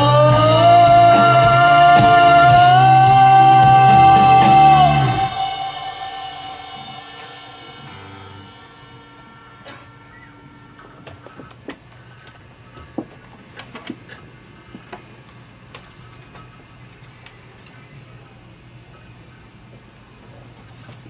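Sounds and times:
band playing: 0.0 - 11.7
low steady stage hum: 0.0 - 21.0.

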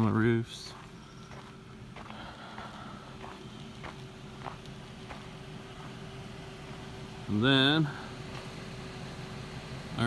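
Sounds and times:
footsteps on snow: 0.0 - 7.1.

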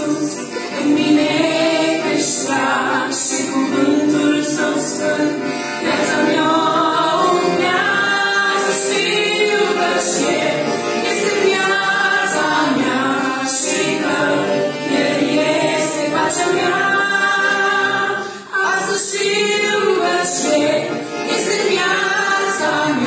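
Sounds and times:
piano accordion: 0.0 - 23.0
women singing a hymn in harmony: 0.0 - 23.0.

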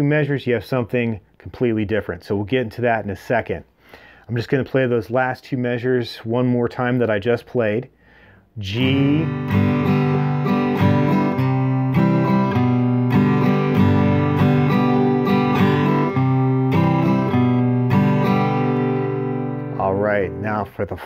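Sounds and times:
acoustic guitar strumming: 8.7 - 20.9.

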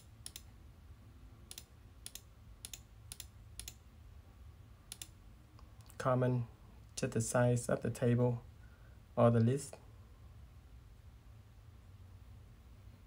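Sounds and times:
computer mouse clicking: 0.0 - 0.5, 1.5 - 3.8, 4.9 - 5.2
faint low hum: 0.0 - 13.0.

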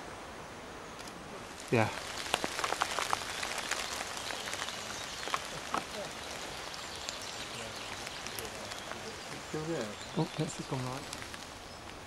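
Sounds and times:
steady rain hiss: 0.0 - 12.0
raindrops tapping on leaves: 0.9 - 12.0.

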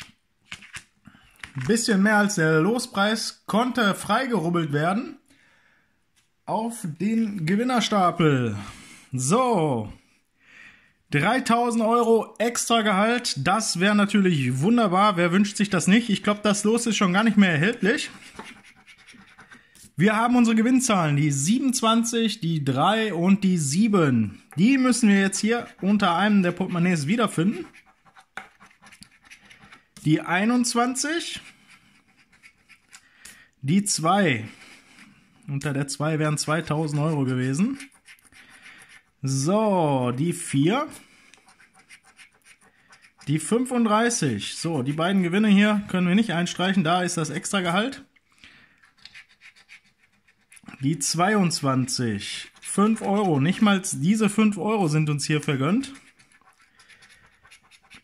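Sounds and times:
coin scratching lottery ticket: 16.6 - 19.6, 24.7 - 29.9, 31.4 - 33.0, 36.2 - 39.1, 41.5 - 43.4, 48.8 - 50.8, 55.5 - 58.0.

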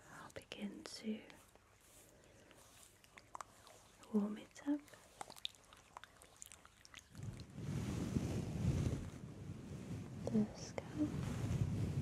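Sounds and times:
oily hands rubbing: 1.0 - 6.4, 7.2 - 10.3
faint sticky clicks: 2.4 - 7.2.

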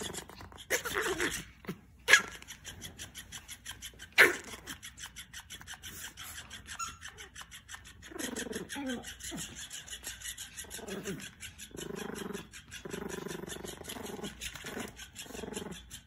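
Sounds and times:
dogs growling: 0.0 - 16.0.

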